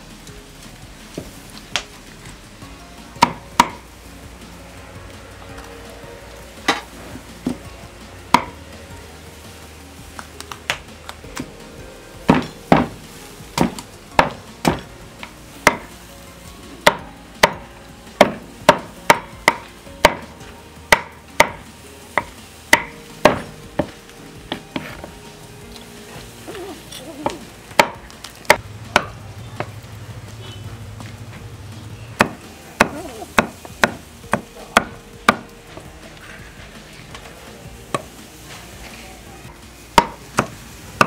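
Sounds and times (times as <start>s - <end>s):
cleaver chopping on wooden block: 8.3s - 8.6s, 13.6s - 14.9s, 15.6s - 15.9s, 16.8s - 17.6s, 18.2s - 20.3s, 20.9s - 21.6s, 22.2s - 23.9s, 27.8s - 29.1s, 32.2s - 35.4s.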